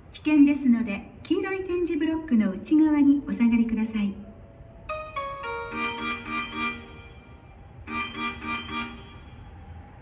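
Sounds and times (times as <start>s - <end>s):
electronic platform chime melody: 5.2s - 9.1s.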